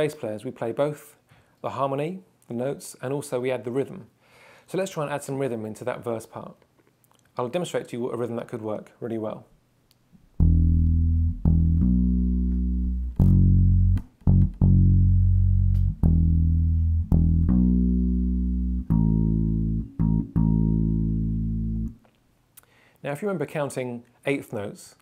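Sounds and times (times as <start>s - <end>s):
bass guitar plucking: 10.4s - 22.0s.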